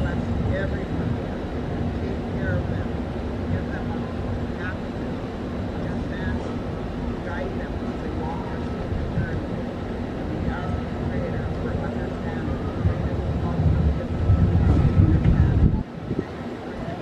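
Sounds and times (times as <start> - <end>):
low uneven rumble: 0.0 - 17.0.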